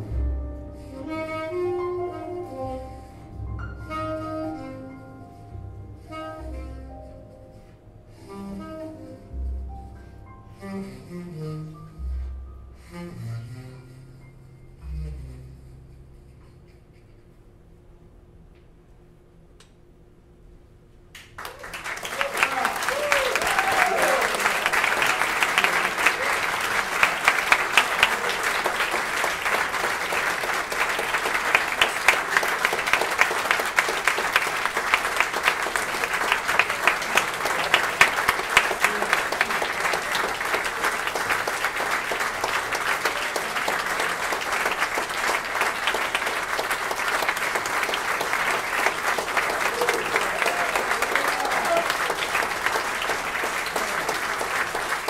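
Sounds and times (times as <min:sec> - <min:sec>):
audience applauding: 0:21.2 - 0:55.0.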